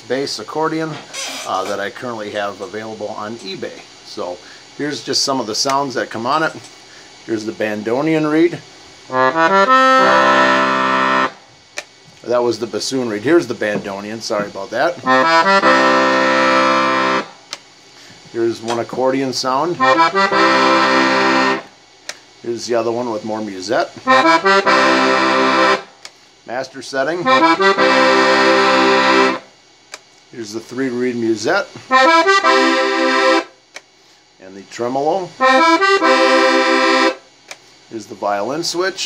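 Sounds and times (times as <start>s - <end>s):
accordion chord: 9.1s - 11.5s, 14.3s - 17.6s, 19.4s - 21.8s, 23.8s - 26.0s, 27.2s - 29.6s, 31.6s - 33.6s, 35.3s - 37.3s.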